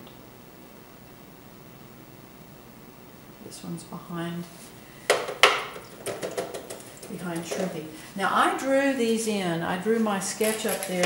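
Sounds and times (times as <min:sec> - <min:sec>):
sharp knocks: 0:05.1 - 0:06.8.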